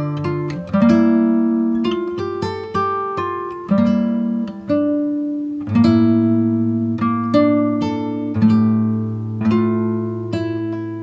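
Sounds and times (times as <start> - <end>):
slow acoustic guitar music: 0.0 - 11.0.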